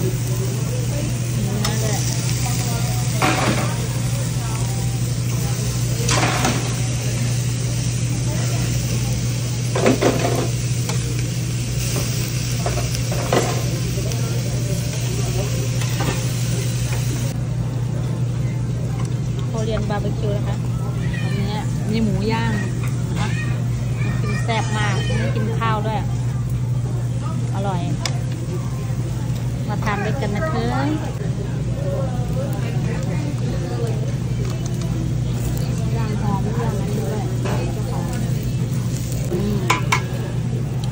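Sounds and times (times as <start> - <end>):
meat sizzling on a grill: 0.0 - 17.4, 19.4 - 40.9
voices chattering: 0.0 - 40.9.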